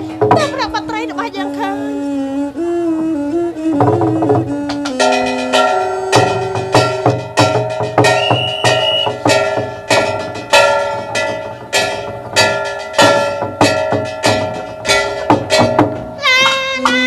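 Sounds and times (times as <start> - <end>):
drum strokes: 0.0 - 1.4, 3.6 - 17.0
ringing bell-like metallic strikes: 5.0 - 15.8
held high note: 8.0 - 9.2.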